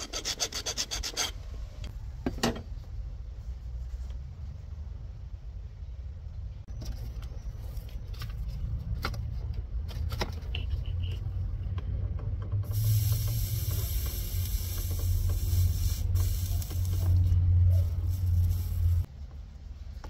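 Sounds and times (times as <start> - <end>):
loud hiss: 12.7 - 17.2.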